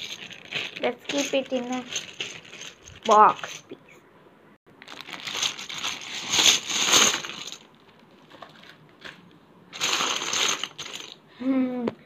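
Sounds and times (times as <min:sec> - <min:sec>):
plastic bag crinkling: 0:00.0 - 0:03.6, 0:04.7 - 0:07.6
plastic tiles clattering: 0:00.0 - 0:03.7.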